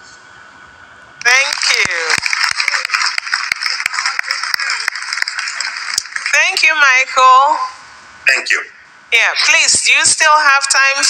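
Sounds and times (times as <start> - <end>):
audience applauding: 1.2 - 7.2.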